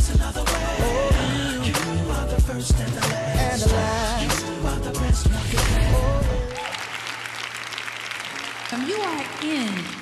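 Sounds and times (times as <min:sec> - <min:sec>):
gospel band and singer: 0:00.0 - 0:07.1
audience applauding: 0:06.2 - 0:10.0.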